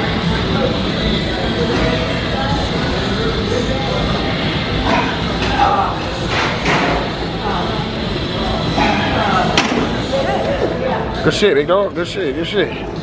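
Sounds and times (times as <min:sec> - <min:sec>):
indistinct voices: 0:00.0 - 0:11.2.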